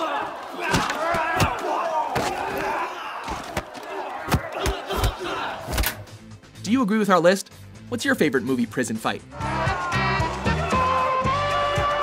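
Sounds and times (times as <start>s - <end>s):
men shouting and yelling: 0.0s - 6.1s, 9.2s - 12.0s.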